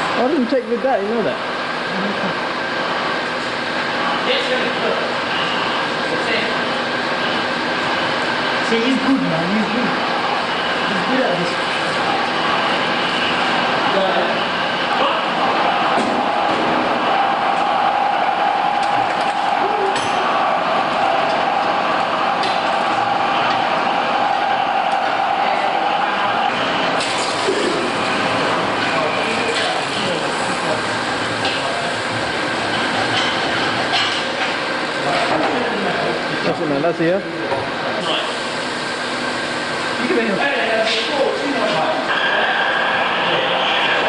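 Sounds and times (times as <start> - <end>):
steady hum: 0.0 - 44.0
welding torch flame hissing: 9.1 - 35.0, 38.0 - 44.0.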